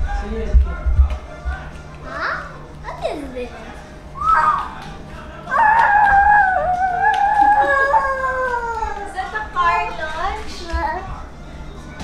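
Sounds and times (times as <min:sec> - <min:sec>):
child long held cry: 0:05.5 - 0:09.1
young children shrieking: 0:05.5 - 0:09.1.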